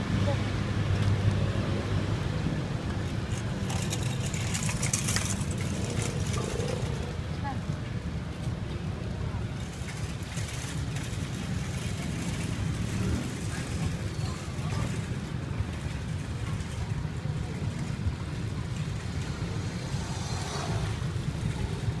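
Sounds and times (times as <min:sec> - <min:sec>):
low traffic rumble: 0:00.0 - 0:22.0.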